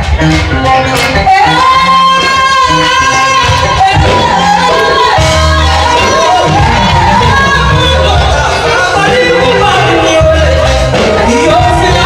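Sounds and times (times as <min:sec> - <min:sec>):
bass line: 0:00.0 - 0:12.0
live band music: 0:00.0 - 0:12.0
woman singing: 0:00.9 - 0:12.0.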